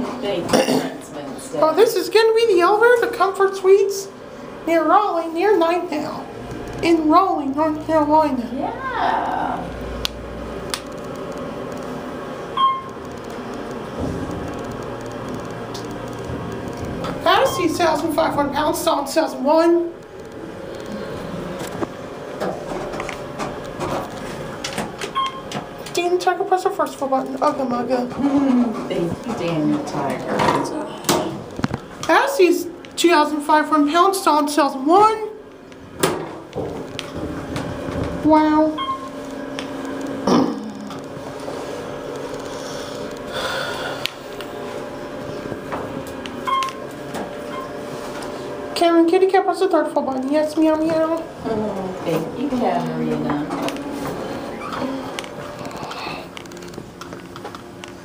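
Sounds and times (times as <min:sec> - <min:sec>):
elevator machine hum: 0:00.0 - 0:58.0.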